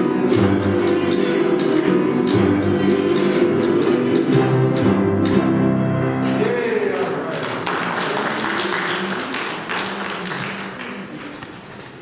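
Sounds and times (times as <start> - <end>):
audience applause: 6.4 - 11.7.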